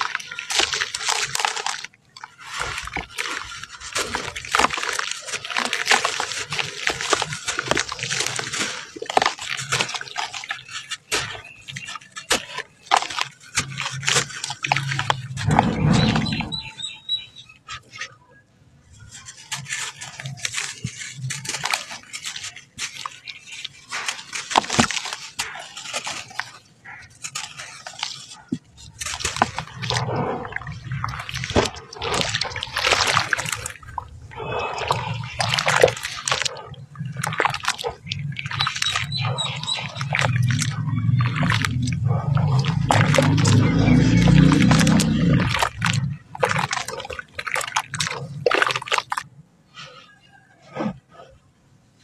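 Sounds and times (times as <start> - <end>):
sand crumbling onto water: 0.0 - 16.8, 19.0 - 49.3
hands squelching wet clay: 0.0 - 51.4.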